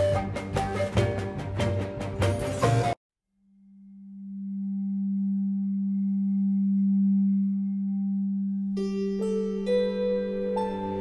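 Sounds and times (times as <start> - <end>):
low steady drone tone: 4.2 - 11.0.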